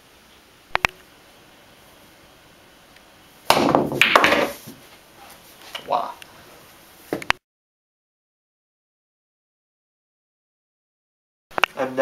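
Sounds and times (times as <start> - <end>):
cue striking ball: 3.5 - 4.8
pool balls clacking: 3.5 - 4.8
balls rolling: 3.5 - 5.0.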